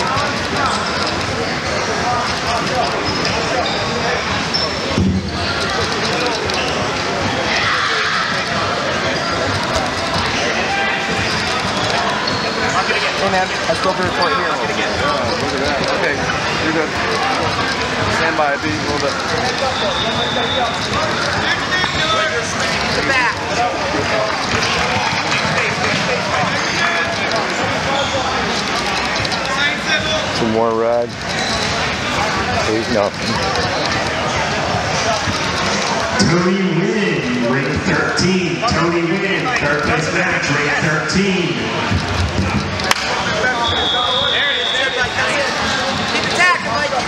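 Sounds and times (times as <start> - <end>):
crowd chatter: 0.0 - 47.0
hubbub of voices: 0.0 - 47.0
high electronic beep: 19.7 - 21.0, 43.6 - 46.2.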